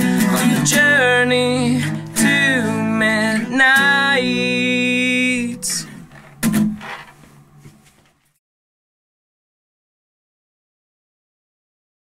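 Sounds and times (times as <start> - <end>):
acoustic guitar strum: 0.0 - 7.3.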